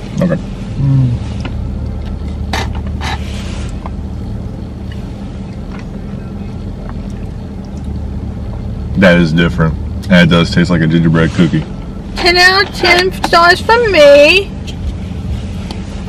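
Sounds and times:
car running hum inside cabin: 0.0 - 16.0.

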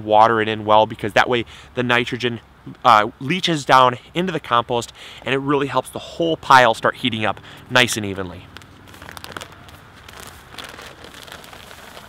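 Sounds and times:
coffee grounds falling on leaves: 8.4 - 12.0
foil bag crinkling: 8.5 - 12.0.

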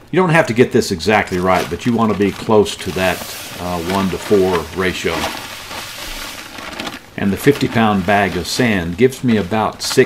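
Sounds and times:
sand pouring into plastic tub: 1.2 - 10.0.

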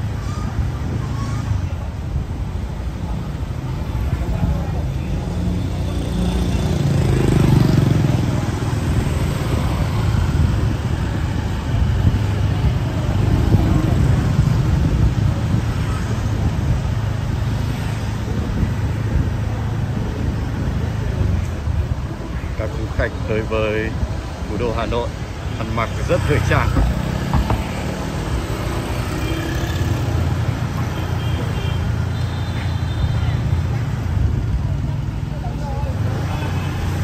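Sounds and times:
vehicles passing on street: 0.0 - 37.0.

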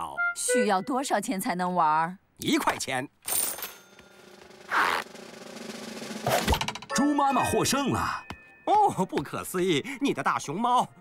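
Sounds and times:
coin clinking: 3.2 - 4.4.

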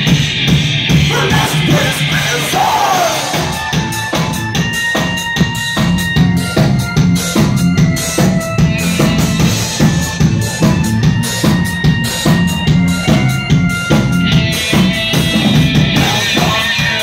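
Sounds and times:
bass guitar: 0.0 - 17.0
drum kit beat: 0.0 - 17.0
electric guitar: 0.0 - 17.0
keyboard sustained tones: 0.0 - 17.0.

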